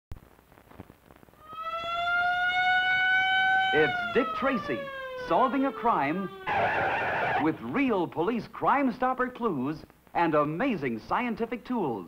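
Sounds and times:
film soundtrack crackle: 0.1s - 1.8s
siren wailing: 1.4s - 7.7s.

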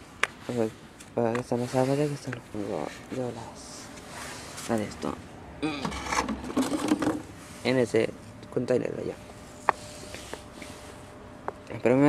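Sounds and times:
person speaking: 0.4s - 6.0s.

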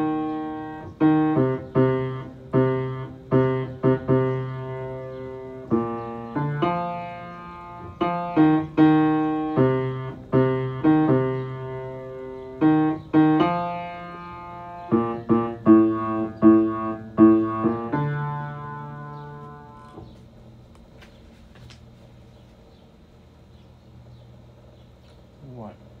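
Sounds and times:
slow low piano notes: 0.0s - 20.2s.

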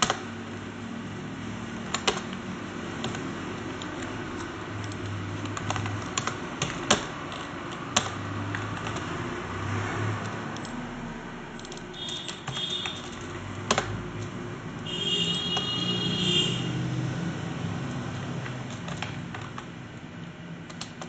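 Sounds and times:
computer keyboard typing: 0.0s - 16.6s, 17.2s - 21.0s.

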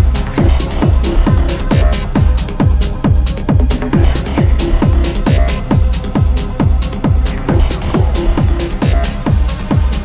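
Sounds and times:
hi-hats: 0.0s - 10.0s
kick drum: 0.0s - 10.0s
techno music: 0.0s - 10.0s.

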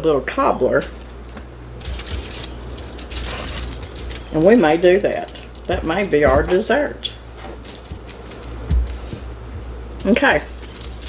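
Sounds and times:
aluminium foil crinkling: 0.8s - 11.0s.

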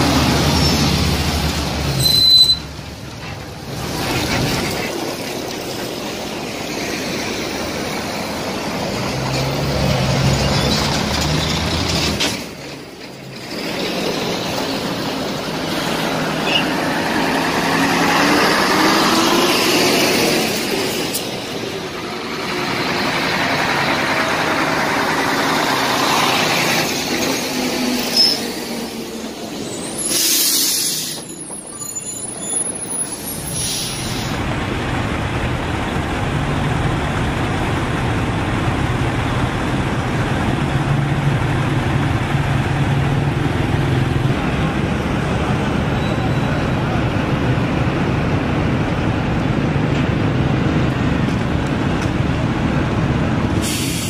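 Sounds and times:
military trucks driving past: 0.0s - 54.0s
short hiss: 53.6s - 54.0s.

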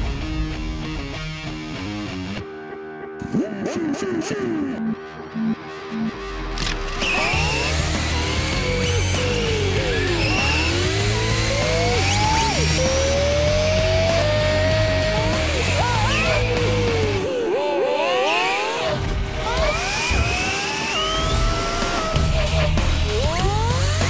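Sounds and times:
background music with low beat: 0.0s - 17.4s
toy car electric motors whining: 6.6s - 17.3s, 18.0s - 24.0s.

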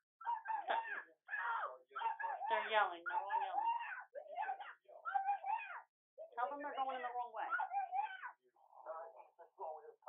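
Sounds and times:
voices shouting over telephone: 0.2s - 8.5s.

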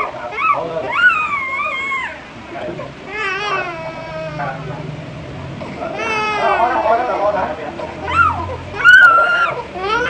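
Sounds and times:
toddler crying: 0.3s - 2.3s, 3.1s - 4.7s, 5.8s - 6.8s, 8.0s - 10.0s.

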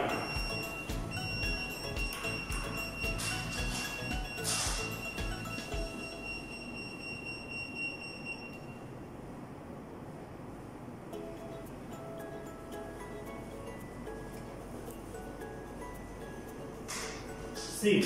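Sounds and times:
regular electronic beat: 0.0s - 6.2s
electronic warning tune: 0.0s - 8.9s
steady high tone: 0.0s - 9.1s.

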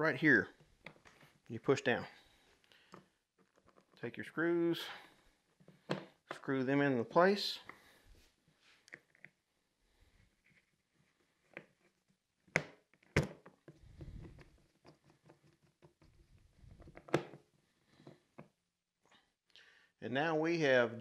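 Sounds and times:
faint handling noise: 0.4s - 4.2s.

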